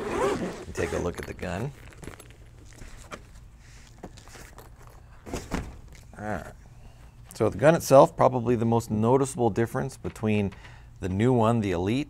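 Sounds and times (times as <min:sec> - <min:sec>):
carrying case clicks and rustles: 0:00.2 - 0:03.4.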